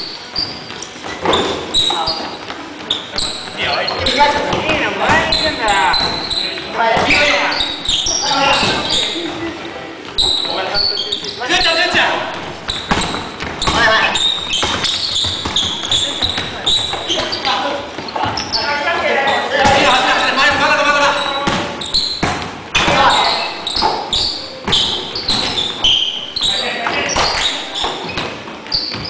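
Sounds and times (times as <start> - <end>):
basketball bouncing on wooden floor: 12.3 - 17.4.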